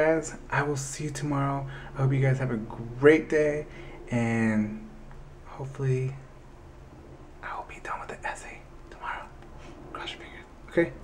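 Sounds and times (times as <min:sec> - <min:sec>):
man whispering: 0:02.7 - 0:06.2, 0:07.4 - 0:11.0.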